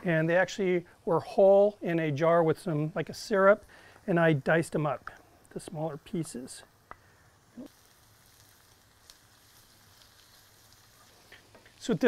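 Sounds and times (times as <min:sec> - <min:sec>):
faint sizzling in a skillet: 0:00.0 - 0:12.0.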